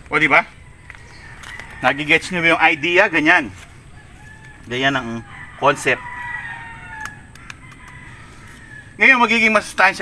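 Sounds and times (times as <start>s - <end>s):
rooster crowing: 0.4s - 9.5s
faint sharp clicks: 7.0s - 8.0s.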